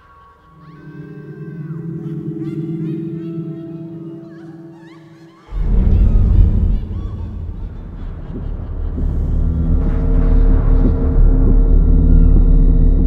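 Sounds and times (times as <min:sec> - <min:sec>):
suspenseful low rumble and drone: 0:00.0 - 0:13.0
sudden deep boom: 0:05.5 - 0:13.0.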